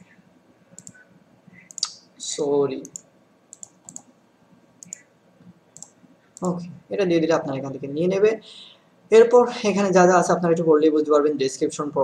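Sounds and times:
keyboard and mouse clicks: 0:00.8 - 0:01.0, 0:01.6 - 0:02.0, 0:02.8 - 0:04.1, 0:04.8 - 0:05.0, 0:05.8 - 0:06.6.

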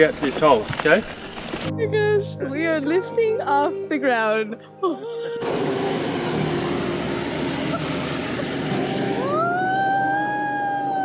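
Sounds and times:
propane burner roaring: 0:05.4 - 0:11.0.

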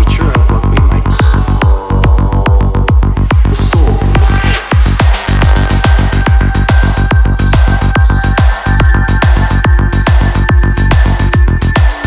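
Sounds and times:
trance electronic dance music: 0:00.0 - 0:12.0.

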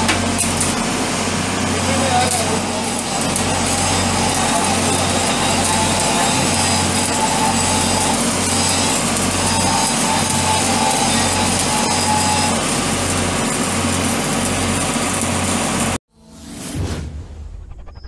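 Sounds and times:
welding arc crackling: 0:00.0 - 0:16.0
low hum: 0:16.1 - 0:18.0.

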